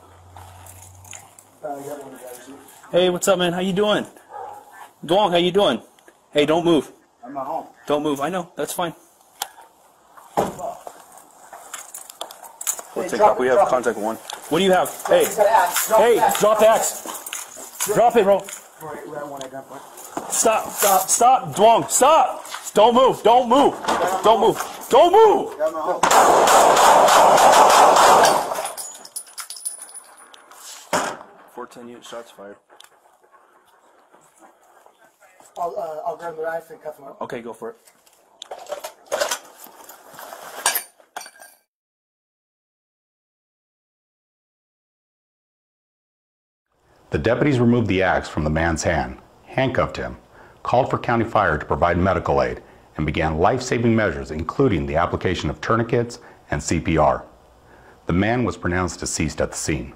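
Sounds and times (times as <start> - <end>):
metal gear clinking and rattling: 28.4 - 30.6.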